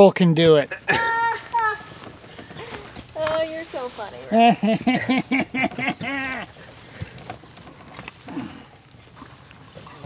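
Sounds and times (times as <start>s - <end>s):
person laughing: 0.7s - 1.4s, 4.3s - 6.5s
rakes scraping through chips and soil: 1.5s - 4.6s.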